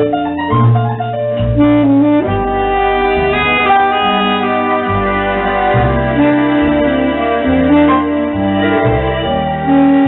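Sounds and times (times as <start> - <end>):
backing accompaniment with bass: 0.0 - 10.0
tenor saxophone melody: 1.5 - 10.0.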